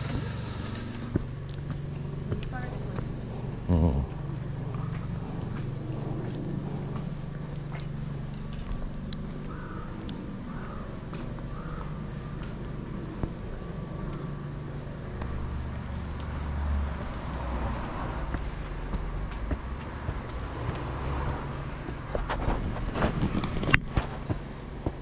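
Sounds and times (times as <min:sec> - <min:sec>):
car passing: 0:00.0 - 0:25.0
footsteps on stone steps: 0:10.5 - 0:13.4, 0:17.0 - 0:25.0.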